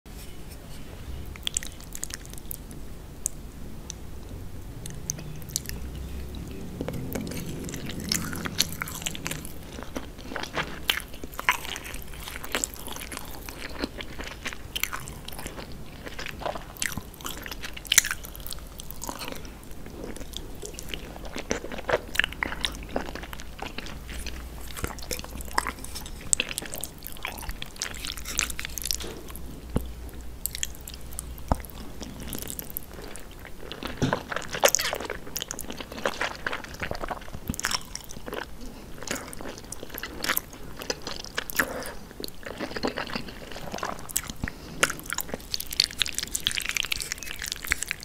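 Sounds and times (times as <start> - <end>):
chewing and mouth smacks: 1.4 - 4.0, 4.8 - 48.0.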